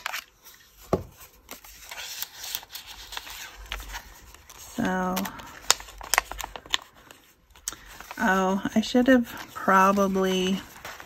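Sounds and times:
paper rustling: 0:00.0 - 0:11.0.

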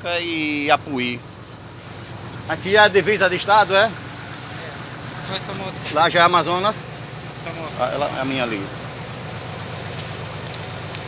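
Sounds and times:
engine idling: 0:00.0 - 0:11.0.

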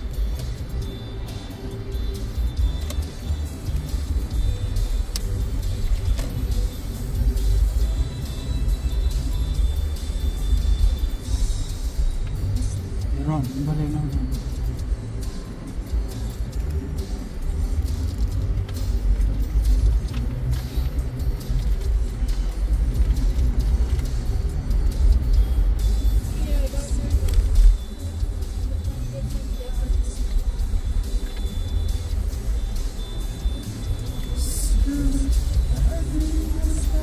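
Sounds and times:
faint music: 0:00.0 - 0:37.0
road and engine rumble: 0:00.0 - 0:37.0.

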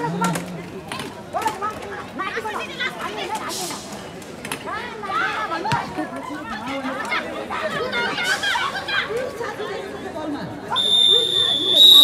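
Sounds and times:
chatter of high-pitched voices: 0:04.6 - 0:10.5.

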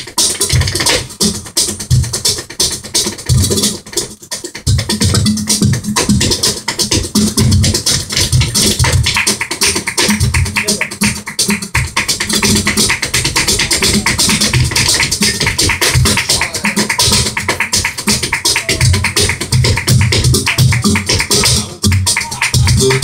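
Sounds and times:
cajon drumming: 0:00.0 - 0:23.0
hand-clapping: 0:00.0 - 0:23.0
dancer's footwork: 0:04.7 - 0:21.6
flamenco guitar: 0:05.8 - 0:23.0.

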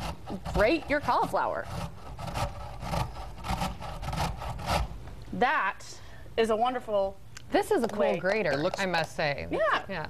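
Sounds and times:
cauliflower rasping on metal grater: 0:00.0 - 0:04.9.

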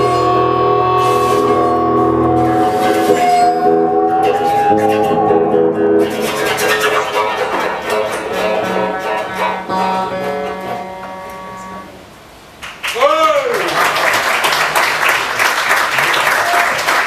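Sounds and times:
guitar chord ringing: 0:00.0 - 0:12.1.

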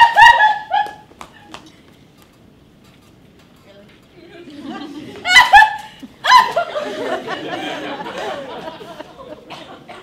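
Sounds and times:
loud high-pitched laughter: 0:00.0 - 0:01.0, 0:04.7 - 0:08.9
softer scattered laughter: 0:04.3 - 0:10.0.

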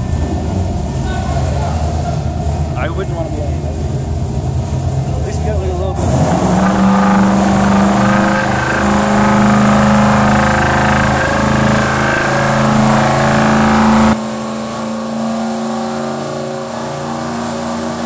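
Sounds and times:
race car engine at high revs: 0:05.8 - 0:18.0.

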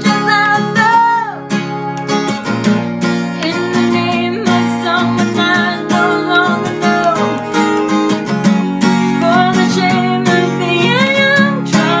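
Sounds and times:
woman singing: 0:00.0 - 0:01.6, 0:03.4 - 0:08.0, 0:08.8 - 0:12.0
strummed acoustic guitar: 0:00.0 - 0:12.0.

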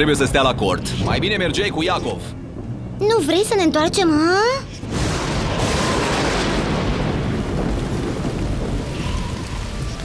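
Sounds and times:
thunder rumbling: 0:04.8 - 0:10.0
heavy rain: 0:04.9 - 0:10.0.

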